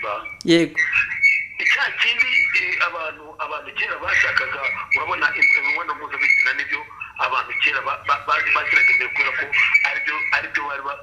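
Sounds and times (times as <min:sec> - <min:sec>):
person talking through phone speaker: 0:01.6 - 0:11.0.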